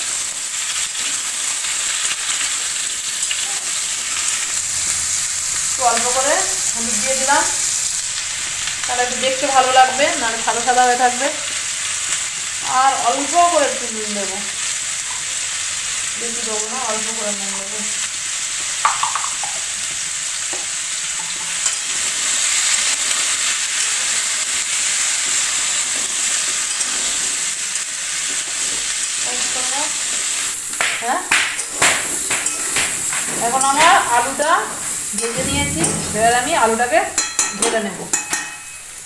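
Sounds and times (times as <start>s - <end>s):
potatoes sizzling in oil: 0.0s - 39.0s
spatula scraping a pan: 31.5s - 38.8s.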